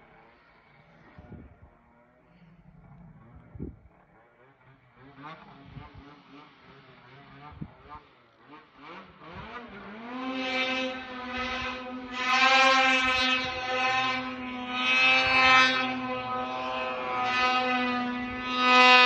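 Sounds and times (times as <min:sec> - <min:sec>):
snowmobile engine high revs: 0:00.0 - 0:19.0.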